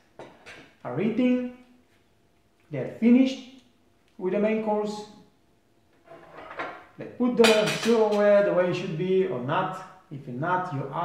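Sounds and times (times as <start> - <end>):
knife and fork scraping a plate: 6.1 - 6.8
man's voice: 7.0 - 11.0.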